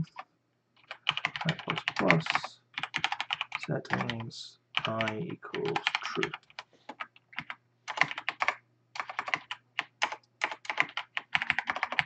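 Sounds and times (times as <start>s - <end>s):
fast typing on keyboard: 0.8s - 4.2s, 4.8s - 12.0s.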